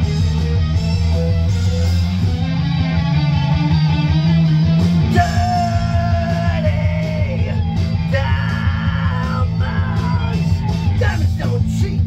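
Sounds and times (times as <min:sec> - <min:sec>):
electric guitar lead: 0:00.0 - 0:12.0
low bass: 0:00.0 - 0:12.0
drum beat: 0:05.0 - 0:12.0.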